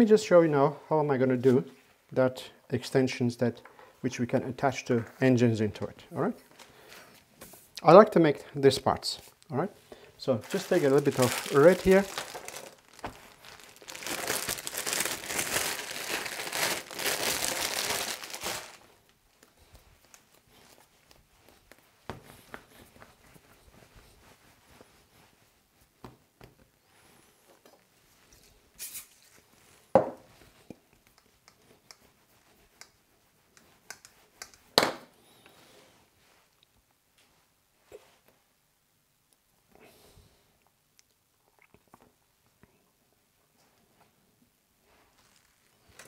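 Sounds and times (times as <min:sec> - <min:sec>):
plastic wrap crinkling: 0:10.2 - 0:25.4, 0:45.0 - 0:46.0.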